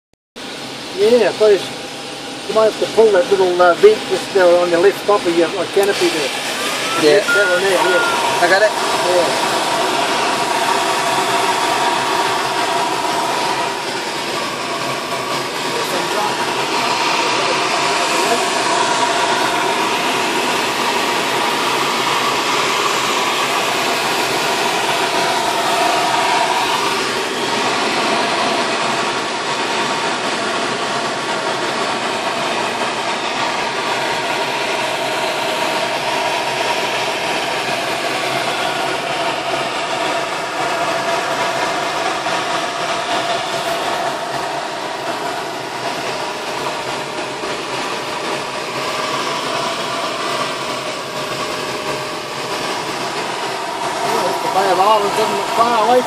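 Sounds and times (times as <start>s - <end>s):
rush of air in flight: 3.4s - 56.0s
faint steady whistle: 6.7s - 9.3s.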